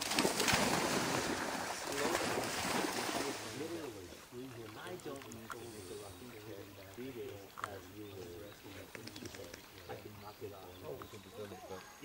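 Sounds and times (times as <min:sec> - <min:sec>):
distant people talking: 0:01.7 - 0:12.0.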